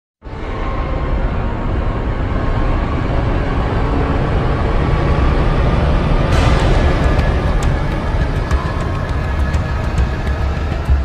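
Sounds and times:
low cinematic rumble: 0:00.3 - 0:11.0.

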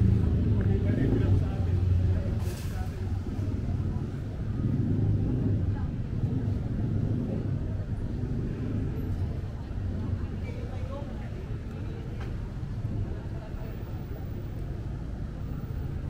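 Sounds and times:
vehicle traffic rumble: 0:00.0 - 0:16.0.

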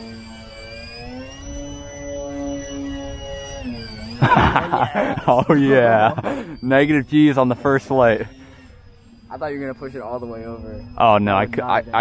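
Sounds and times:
electric motors and propellers whining: 0:00.0 - 0:12.0.

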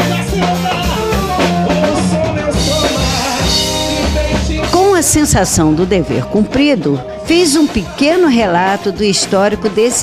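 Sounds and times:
drum kit beat: 0:00.0 - 0:10.0
live band dance music: 0:00.0 - 0:10.0.

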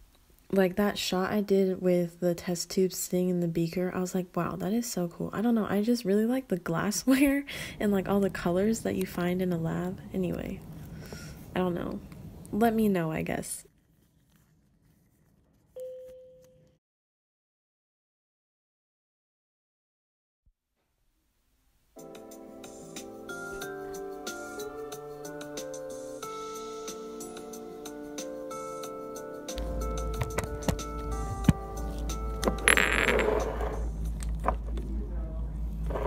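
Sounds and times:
soft background music: 0:05.1 - 0:10.6, 0:22.0 - 0:36.0.

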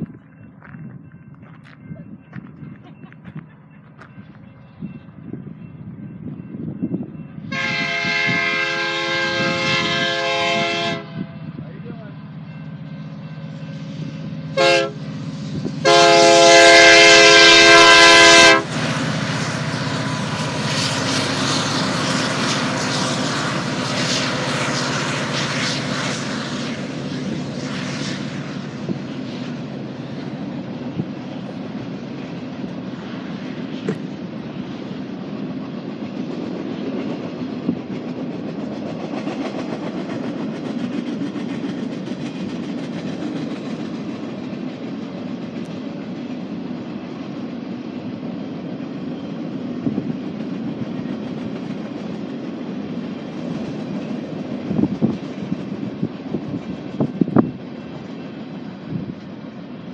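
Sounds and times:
freight train rumbling past: 0:00.0 - 0:59.9
locomotive air horn blast: 0:07.5 - 0:11.4, 0:14.6 - 0:15.0, 0:15.8 - 0:18.8.

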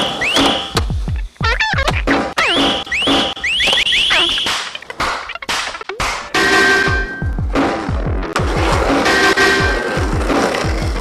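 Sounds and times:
electronic alarm tone whooping: 0:02.4 - 0:04.5.

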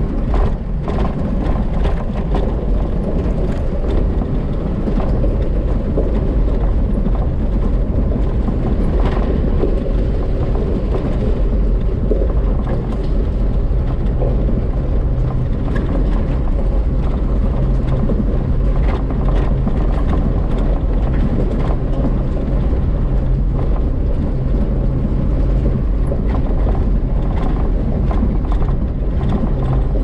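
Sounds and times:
engine and tyre rumble on gravel: 0:00.0 - 0:30.0.

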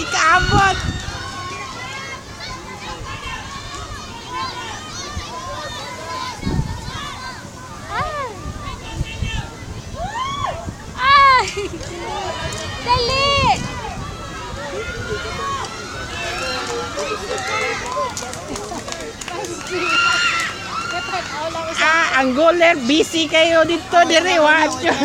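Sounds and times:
overlapping chatter: 0:00.0 - 0:25.0
voices shouting and calling: 0:00.0 - 0:25.0.

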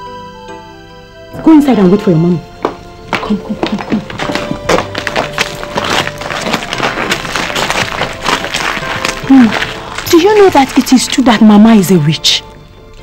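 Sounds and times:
background music: 0:00.0 - 0:13.0
footsteps on gravel: 0:02.6 - 0:11.7.

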